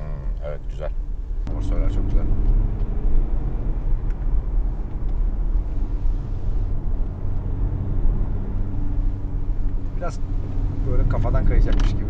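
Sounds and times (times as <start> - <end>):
car engine hum: 0.0 - 12.0
tyre and road rumble: 0.0 - 12.0.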